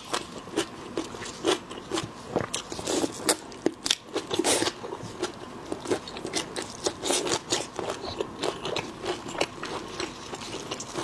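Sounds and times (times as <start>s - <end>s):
wet chewing and sucking: 4.2s - 11.0s.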